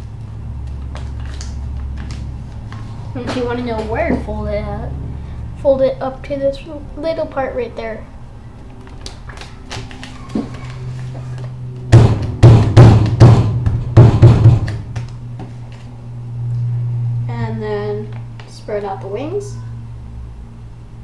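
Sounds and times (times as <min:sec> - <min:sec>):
steady low hum: 0:00.0 - 0:21.0
fists thumping on tabletop: 0:12.0 - 0:14.8.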